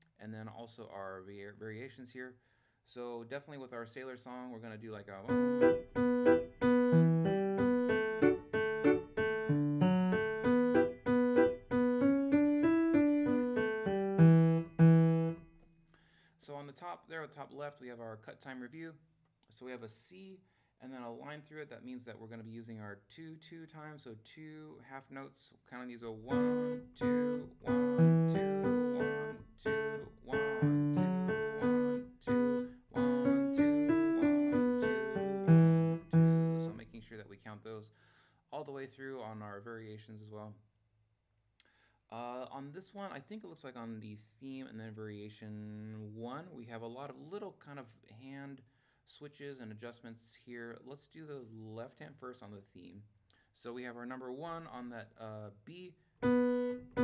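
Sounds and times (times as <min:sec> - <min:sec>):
piano tune: 0:05.2 - 0:15.5, 0:26.3 - 0:36.8, 0:56.2 - 0:57.0.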